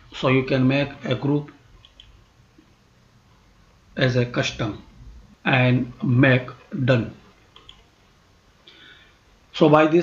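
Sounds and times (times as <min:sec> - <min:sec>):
computer mouse click: 0:01.8 - 0:02.2, 0:07.5 - 0:07.9.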